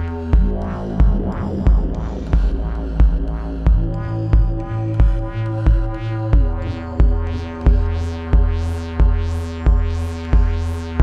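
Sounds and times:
heavy kick drum: 0:00.0 - 0:11.0
sustained low bass: 0:00.0 - 0:11.0.

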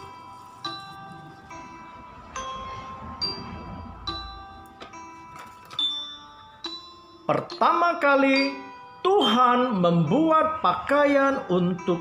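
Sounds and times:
chiming bell-like melody: 0:00.0 - 0:12.0.

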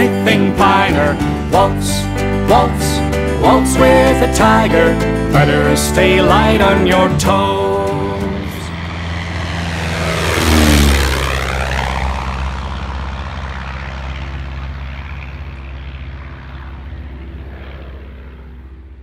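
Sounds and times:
propeller plane flying past: 0:00.0 - 0:19.0.

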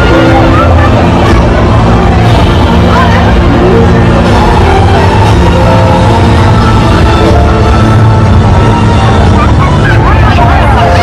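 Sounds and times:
crowd calling and chattering: 0:00.0 - 0:11.0
loud parade music: 0:00.0 - 0:11.0.

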